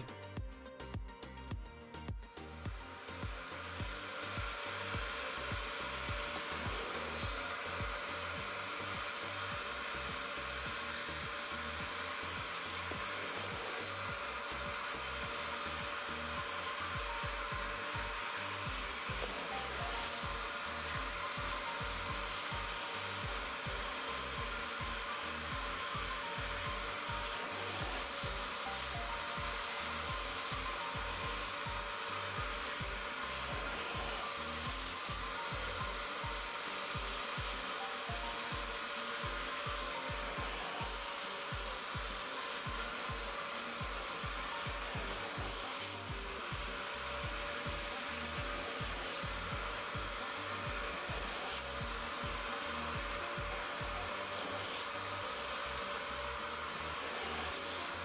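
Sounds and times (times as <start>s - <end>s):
carpet cleaner whining: 2.4s - 58.0s.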